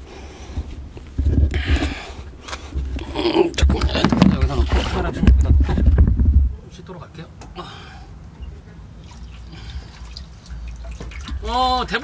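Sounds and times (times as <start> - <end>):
low background rumble: 0.0 - 12.0
water splashing while washing: 9.0 - 12.0.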